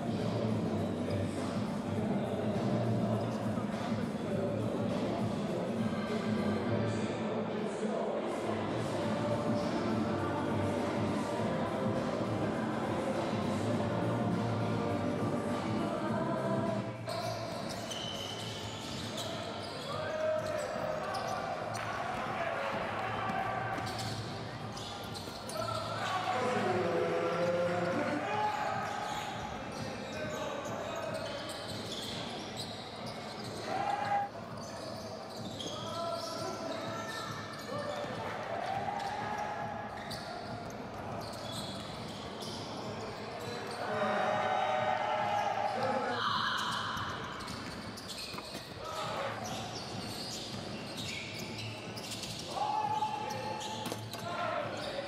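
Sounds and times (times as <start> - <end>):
sneakers squeaking on court: 17.0 - 26.7, 27.3 - 43.9, 45.2 - 55.0.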